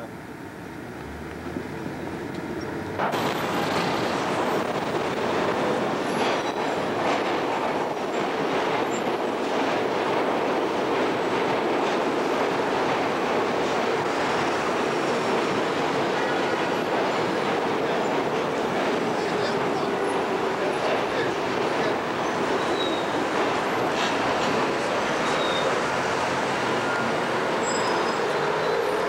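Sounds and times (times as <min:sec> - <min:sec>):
continuous city rumble: 0:00.0 - 0:29.0.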